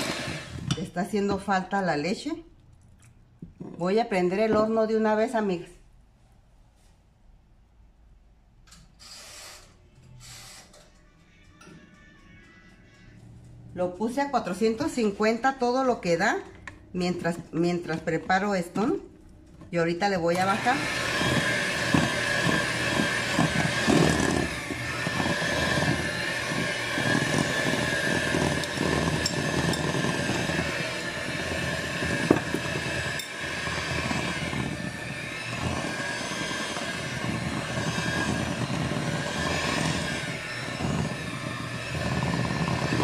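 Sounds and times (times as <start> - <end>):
electric hand mixer whine: 0.0 - 0.8, 20.2 - 43.0.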